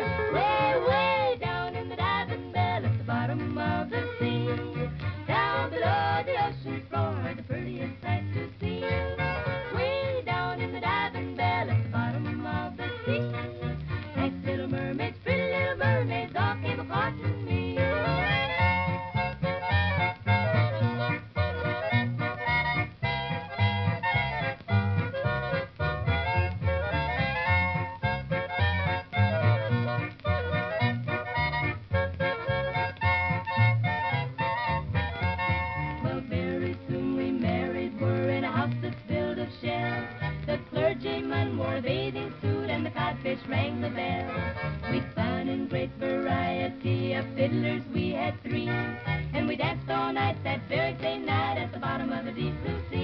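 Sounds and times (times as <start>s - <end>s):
country-pop song on old record: 0.0s - 53.0s.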